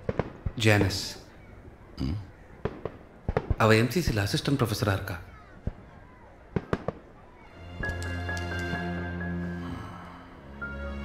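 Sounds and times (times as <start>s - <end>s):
sharp pops: 2.6s - 4.2s, 6.5s - 7.1s
film music: 7.5s - 11.0s.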